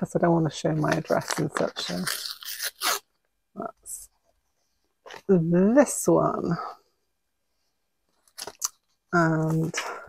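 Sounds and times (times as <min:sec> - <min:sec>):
paper envelope crinkling: 0:00.8 - 0:03.0.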